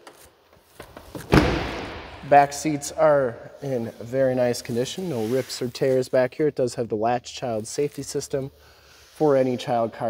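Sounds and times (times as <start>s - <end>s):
pickup truck door thump: 1.2s - 2.1s.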